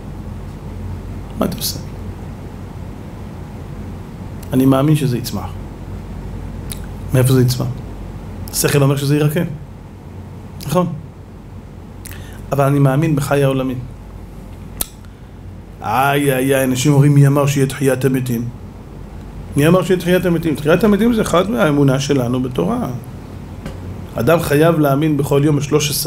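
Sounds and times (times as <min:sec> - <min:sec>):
background hiss: 0:00.0 - 0:26.0
steady low hum: 0:00.0 - 0:26.0
man speaking into a microphone: 0:01.4 - 0:01.9, 0:07.1 - 0:07.8, 0:08.5 - 0:09.6, 0:12.5 - 0:13.9, 0:15.8 - 0:18.5, 0:19.6 - 0:23.0, 0:24.2 - 0:26.0
sharp click: 0:06.7 - 0:06.9, 0:14.8 - 0:15.1.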